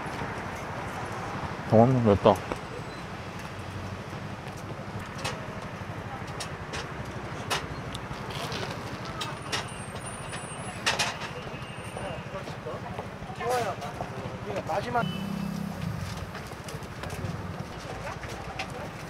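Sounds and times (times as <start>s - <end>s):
vehicle engine idling: 14.2s - 17.8s.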